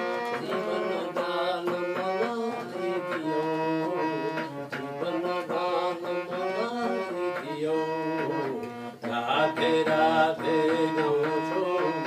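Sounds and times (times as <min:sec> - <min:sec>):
harmonium playing devotional melody: 0:00.0 - 0:12.0
man chanting: 0:00.3 - 0:12.0.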